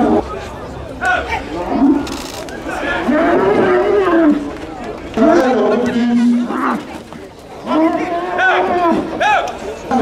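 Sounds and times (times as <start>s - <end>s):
young bull bellowing: 3.0s - 4.5s.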